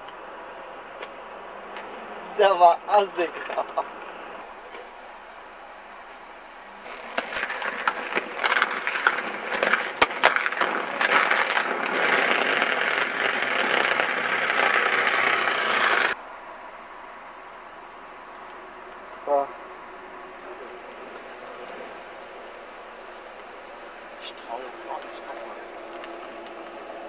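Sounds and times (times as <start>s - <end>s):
skate wheels rolling on pavement: 1.0s - 4.4s, 6.7s - 16.2s, 20.4s - 27.0s
skates grinding on concrete: 6.8s - 16.2s.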